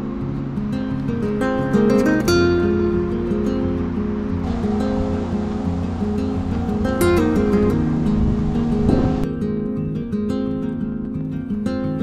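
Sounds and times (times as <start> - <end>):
strummed acoustic guitar chords: 0.0 - 12.0.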